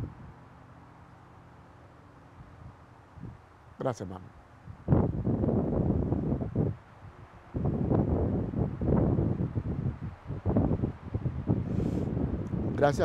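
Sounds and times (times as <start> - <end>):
wind buffeting a microphone: 0.0 - 0.4, 2.4 - 3.4, 4.6 - 13.0.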